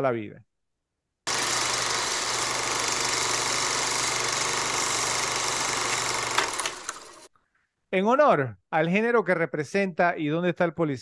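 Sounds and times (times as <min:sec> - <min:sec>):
film projector clatter: 0:01.3 - 0:07.3.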